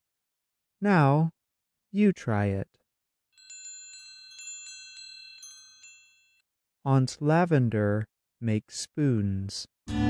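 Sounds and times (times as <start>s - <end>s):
wind chimes ringing: 3.4s - 6.4s.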